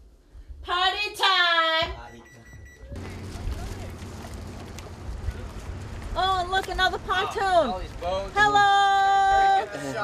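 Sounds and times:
wind rumble: 0:03.0 - 0:08.9.

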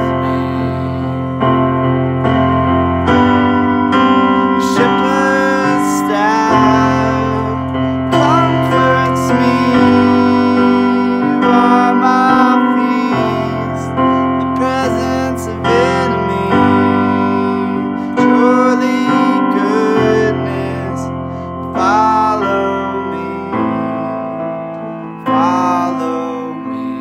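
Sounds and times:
digital piano chords: 0:00.0 - 0:27.0.

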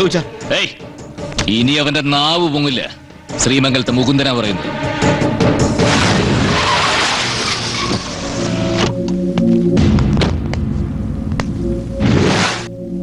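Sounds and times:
film music with held notes: 0:00.0 - 0:06.6, 0:07.9 - 0:13.0
car skidding on dirt: 0:05.8 - 0:08.9.

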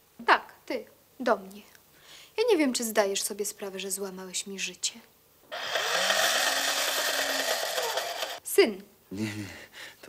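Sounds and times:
machine-like buzzing: 0:05.5 - 0:08.4.

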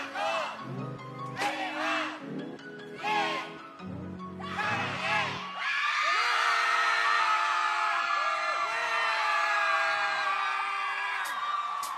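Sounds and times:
backing music: 0:00.0 - 0:05.6
studio audience cheering and screaming: 0:04.4 - 0:11.9.

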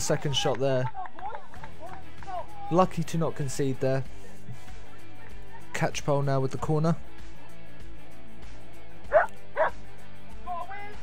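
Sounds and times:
background music: 0:00.0 - 0:11.0
dog yelping: 0:09.1 - 0:09.7
dog barking: 0:09.1 - 0:09.8.

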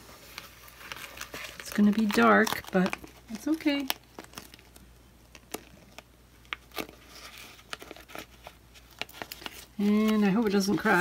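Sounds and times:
tape crinkling: 0:00.0 - 0:11.0.

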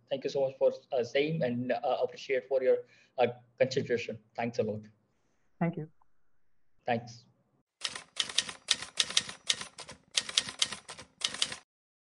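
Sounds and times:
typewriter key clacks: 0:07.8 - 0:11.6.

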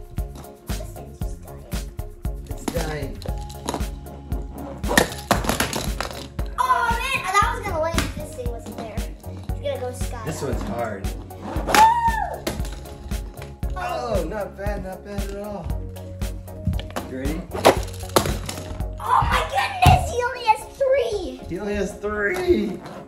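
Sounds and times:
music with steady beat: 0:00.0 - 0:22.0
excited shouts: 0:06.6 - 0:07.6, 0:11.7 - 0:12.4.

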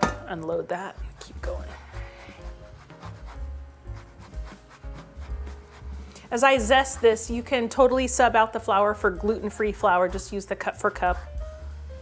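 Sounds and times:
soft background music: 0:00.0 - 0:12.0
grater rasping against peel: 0:01.2 - 0:07.9.

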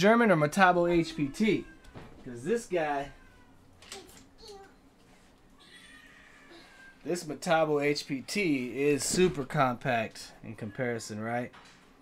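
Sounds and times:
cat meow: 0:05.6 - 0:06.9.

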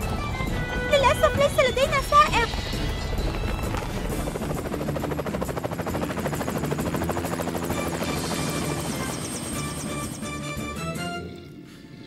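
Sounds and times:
background music: 0:00.0 - 0:12.0
cartoon helicopter rotor chopping: 0:01.0 - 0:10.5.

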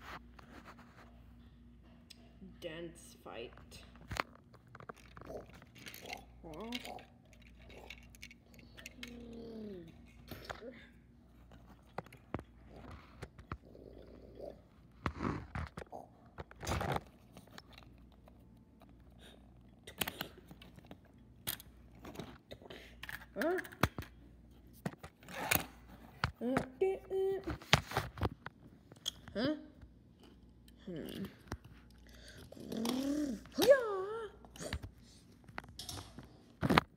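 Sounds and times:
person humming: 0:09.0 - 0:10.0, 0:30.8 - 0:31.4.

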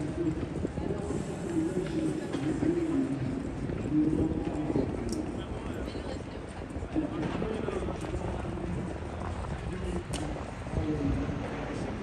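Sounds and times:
street noise: 0:00.0 - 0:12.0.

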